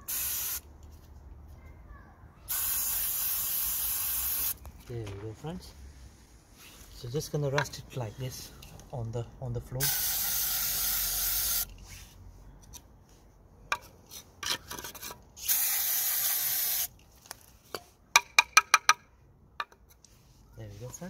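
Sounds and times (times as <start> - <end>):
aerosol can spraying: 0.1 - 0.6, 2.5 - 4.6, 9.8 - 11.7, 15.4 - 16.9.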